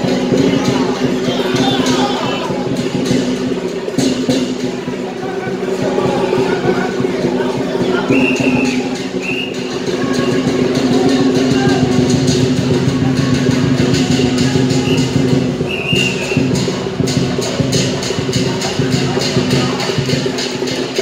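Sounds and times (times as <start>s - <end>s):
held wind instrument notes: 0.0s - 20.6s
percussion: 0.0s - 21.0s
sharp percussion strikes: 0.0s - 21.0s
short high whistle-like notes: 8.1s - 9.8s, 14.8s - 16.8s.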